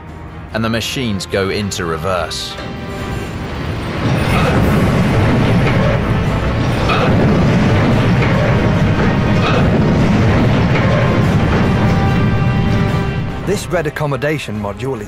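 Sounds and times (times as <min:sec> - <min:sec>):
music playing: 0:00.0 - 0:15.0
metal collapsing rumble: 0:01.4 - 0:15.0.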